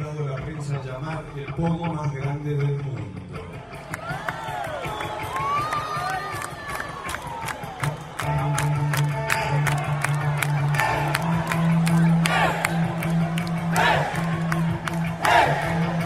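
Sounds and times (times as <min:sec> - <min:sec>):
music with steady beat: 0:03.0 - 0:16.0
bass line: 0:08.0 - 0:16.0
men shouting and cheering: 0:09.4 - 0:16.0.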